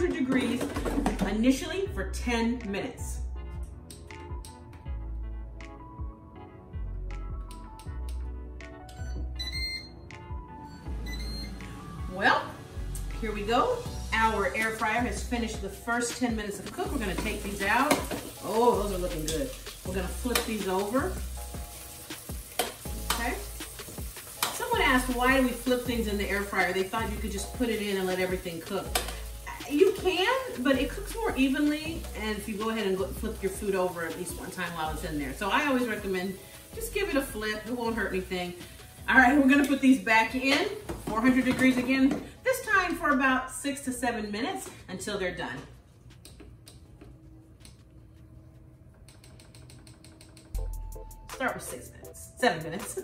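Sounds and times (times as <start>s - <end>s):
chicken wings sizzling: 16.4s - 41.8s.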